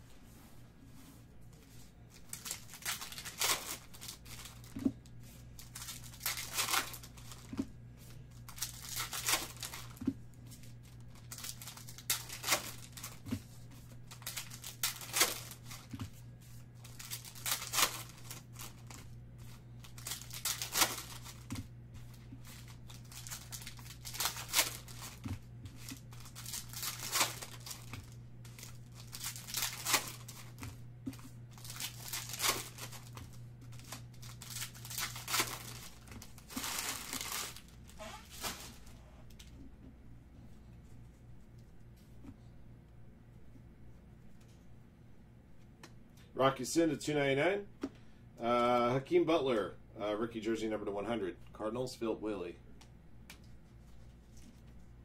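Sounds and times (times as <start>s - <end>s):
steady low hum: 0.0s - 55.0s
foil packs torn and crinkled: 2.2s - 4.8s, 5.4s - 7.5s, 8.4s - 10.0s, 10.6s - 16.0s, 16.8s - 39.0s.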